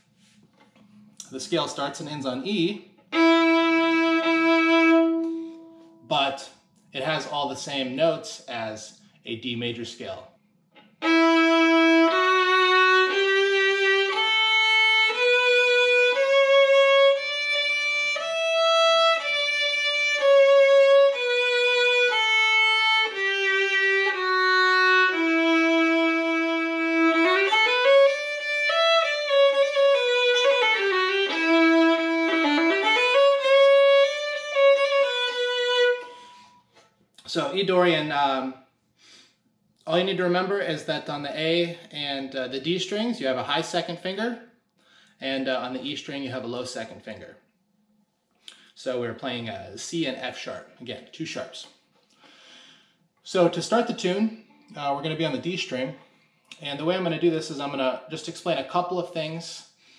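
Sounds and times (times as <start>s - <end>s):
solo fiddle playing a scale: 1.4s - 6.4s, 10.8s - 36.6s
violin long bowed note: 1.7s - 6.1s, 10.8s - 36.6s.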